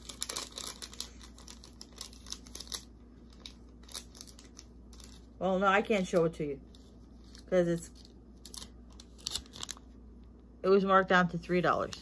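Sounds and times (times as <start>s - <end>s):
paper crackling and rustling: 0.0s - 5.4s, 6.0s - 9.9s.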